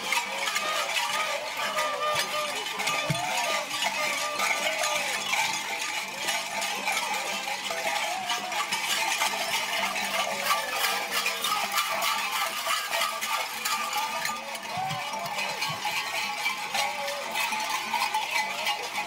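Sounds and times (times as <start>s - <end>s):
metal bells clanking and jingling: 0.0s - 19.0s.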